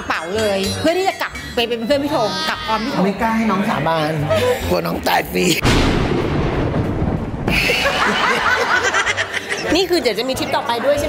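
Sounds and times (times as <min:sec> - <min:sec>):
comic explosion blast: 0:05.6 - 0:08.3
burst of laughter: 0:07.5 - 0:09.6.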